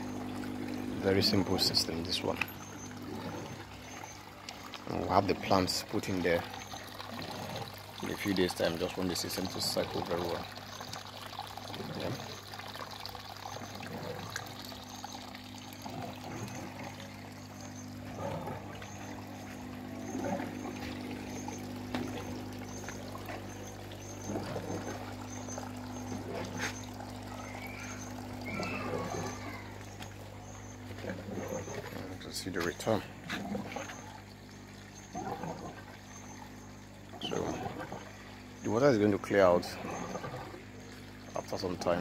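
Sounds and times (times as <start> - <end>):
steady low hum: 0.0 - 42.0
water pouring and trickling: 0.0 - 42.0.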